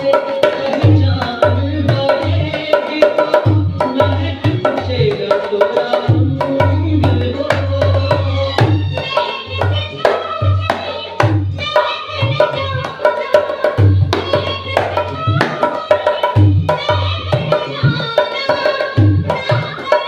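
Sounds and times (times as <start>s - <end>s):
hand drum folk rhythm: 0.0s - 20.0s
recorded film song with singing: 0.0s - 20.0s.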